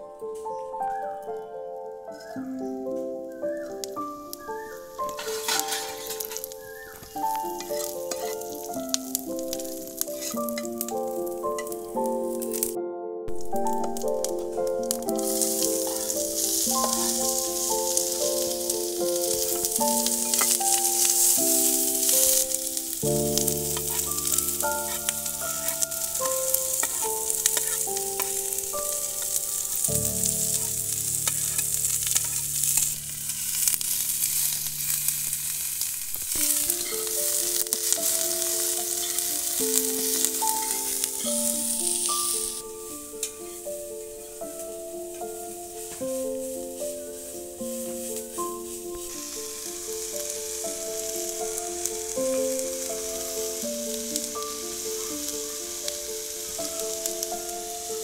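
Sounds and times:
background music: 0:00.0 - 0:33.9, 0:36.4 - 0:58.0
vegetables sizzling in oil: 0:03.2 - 0:58.0.

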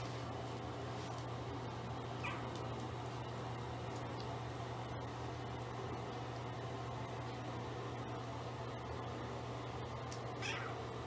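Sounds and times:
steady low hum: 0:00.0 - 0:11.0
puppy squealing: 0:02.2 - 0:02.5, 0:10.4 - 0:10.8.

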